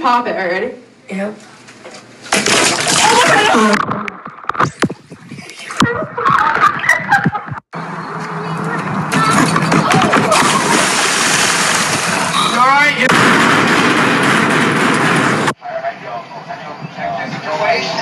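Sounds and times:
loud water splashing in a pool: 2.3 - 3.8, 9.9 - 13.0.

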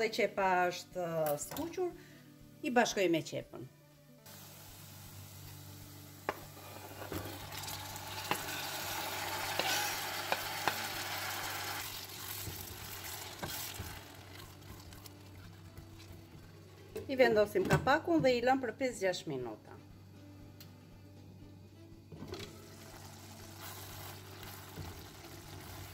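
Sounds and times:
onions sizzling in frying pan: 4.3 - 15.2, 22.6 - 25.9
spatula and knife tapping pan: 9.5 - 10.8.

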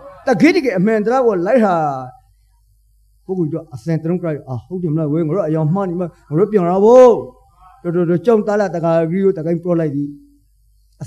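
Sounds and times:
man preaching into a microphone: 0.0 - 2.2, 3.3 - 10.2.

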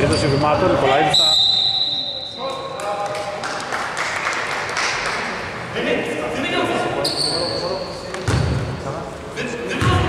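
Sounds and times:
referee's whistle: 1.1 - 2.5
basketball bouncing on hardwood: 8.2 - 8.6.

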